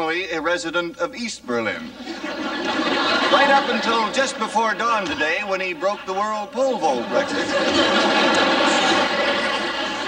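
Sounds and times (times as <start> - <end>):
studio audience laughing: 1.9 - 10.0.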